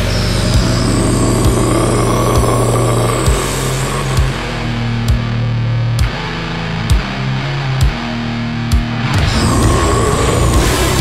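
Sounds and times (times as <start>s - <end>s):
distorted heavy metal guitar chord: 0.0s - 11.0s.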